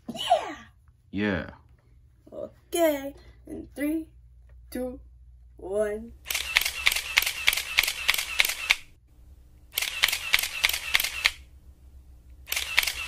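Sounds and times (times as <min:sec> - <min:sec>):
camera shutter bursts: 0:06.2 - 0:08.9, 0:09.7 - 0:11.5, 0:12.4 - 0:13.0.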